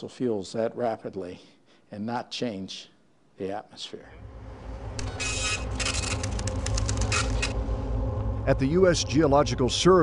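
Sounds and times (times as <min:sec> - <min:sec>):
low machine hum: 0:04.2 - 0:10.0
bursts of mechanical noise: 0:05.0 - 0:07.6
rapid clicks: 0:05.8 - 0:07.6.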